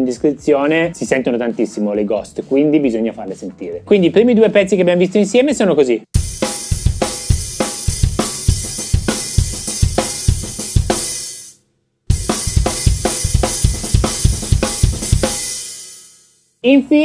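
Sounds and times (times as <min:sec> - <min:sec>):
bass drum and snare groove: 0:06.2 - 0:16.3
hi-hat and cymbal wash: 0:06.2 - 0:16.5.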